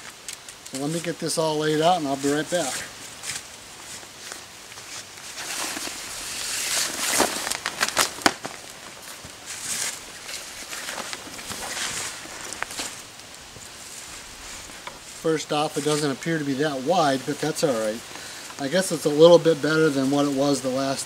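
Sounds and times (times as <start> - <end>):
sharp snaps and clicks: 0.0 - 1.0
air mattress fabric rustling: 1.8 - 16.2.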